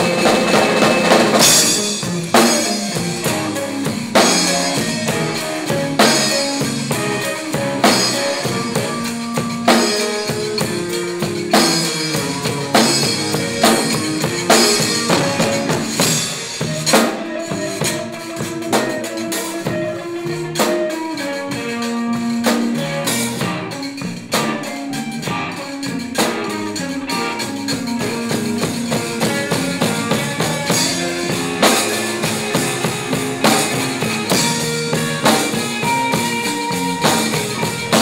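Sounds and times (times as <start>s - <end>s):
drum kit steady beat: 0.0s - 38.0s
electric guitars melody: 0.0s - 38.0s.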